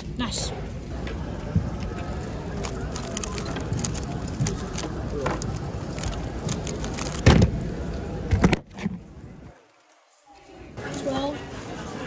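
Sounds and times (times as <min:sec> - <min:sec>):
crowd chatter in a hall: 0:00.0 - 0:12.0.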